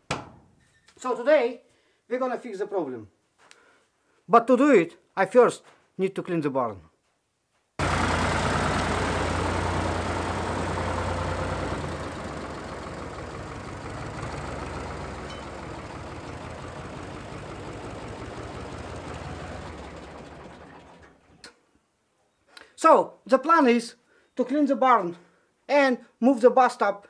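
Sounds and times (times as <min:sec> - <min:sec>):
tractor engine driving past: 0:07.8 - 0:21.5.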